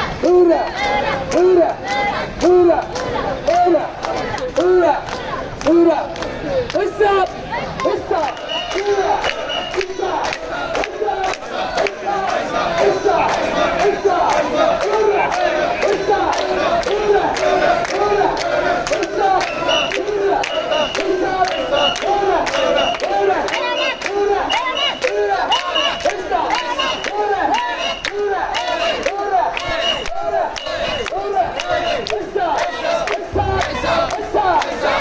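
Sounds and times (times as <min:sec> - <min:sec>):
crowd shouting rhythmic chant: 0:00.0 - 0:35.0
short high steady tone: 0:33.3 - 0:34.7.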